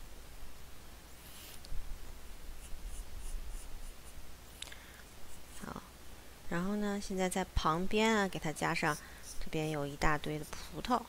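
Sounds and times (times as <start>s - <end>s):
pencil scratching on paper: 1.2s - 1.6s, 2.6s - 4.2s, 5.3s - 5.7s, 8.3s - 9.8s.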